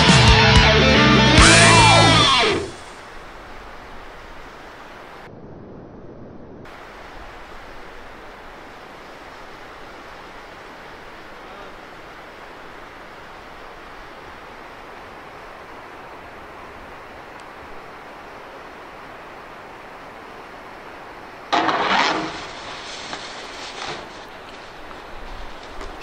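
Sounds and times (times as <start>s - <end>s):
outdoor background hiss: 1.0s - 26.0s
snowboard landing and sliding on snow: 21.5s - 26.0s.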